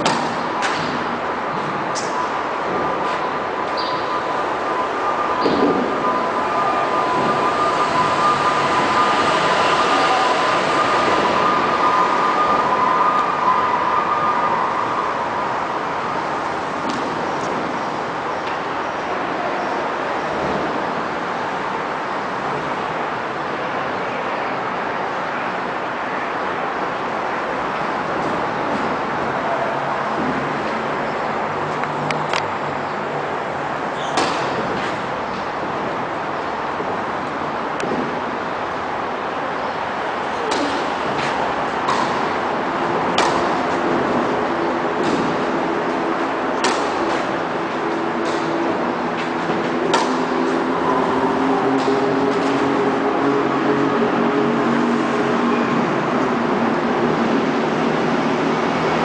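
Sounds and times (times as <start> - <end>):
rushing background noise: 0.0 - 59.0.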